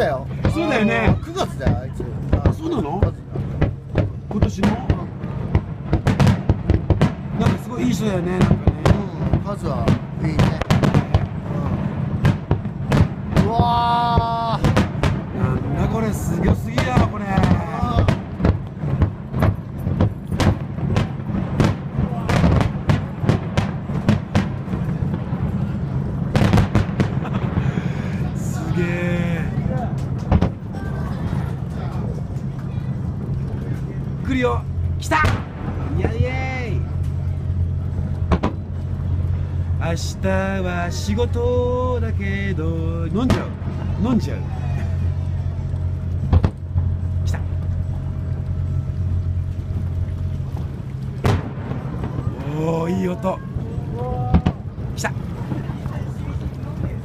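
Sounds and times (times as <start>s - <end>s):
boat engine humming: 0.0s - 57.0s
fireworks bursting bangs: 0.0s - 57.0s
low rumble: 0.0s - 57.0s.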